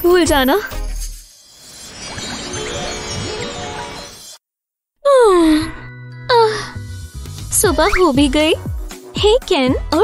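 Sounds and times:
music: 0.0s - 1.3s, 2.1s - 4.4s, 5.4s - 10.0s.

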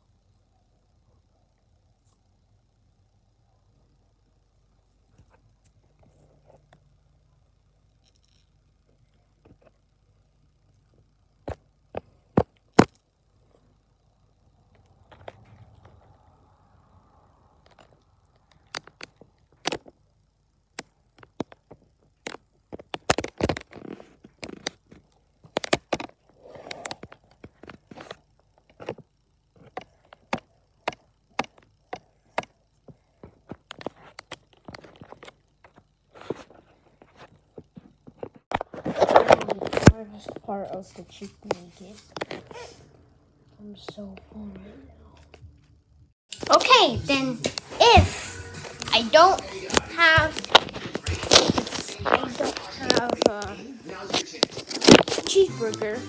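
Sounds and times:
sharp clicks and taps: 29.6s - 32.5s.

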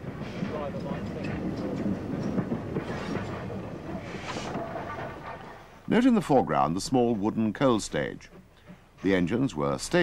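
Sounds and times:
steam locomotive rumbling on rails: 0.0s - 10.0s
irregular knocks: 0.8s - 5.7s.

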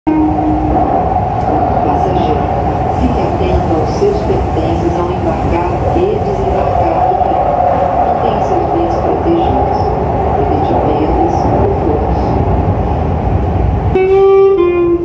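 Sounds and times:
train wheels rumbling: 0.1s - 14.4s.

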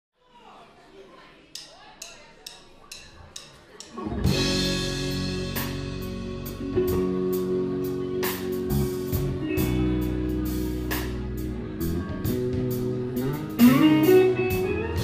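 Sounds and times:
drum kit ticks: 1.5s - 7.2s
live rock band playing: 3.9s - 15.0s.

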